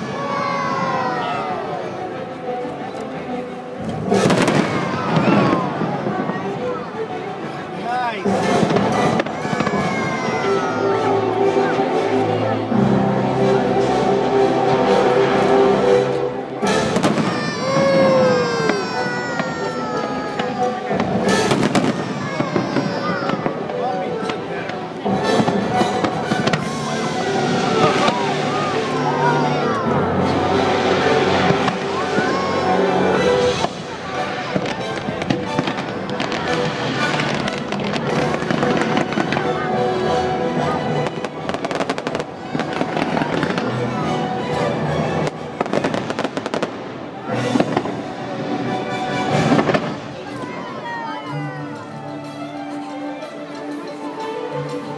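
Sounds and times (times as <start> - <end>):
orchestral music: 0.0 - 54.9
fireworks bangs: 3.8 - 6.7, 8.2 - 10.8, 16.6 - 39.7, 41.1 - 43.8, 45.2 - 48.5, 49.3 - 50.6.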